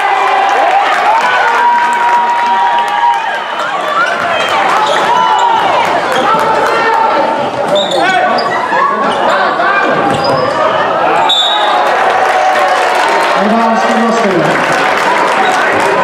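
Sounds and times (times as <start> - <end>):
voices of players and spectators: 0.0 - 16.0
sneakers squeaking: 3.8 - 6.5, 7.6 - 11.7.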